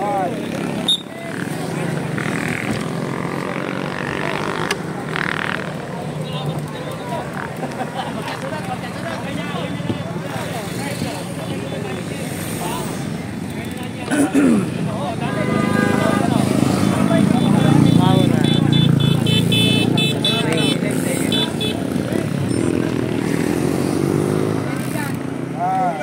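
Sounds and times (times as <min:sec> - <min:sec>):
people talking: 0:00.0 - 0:26.0.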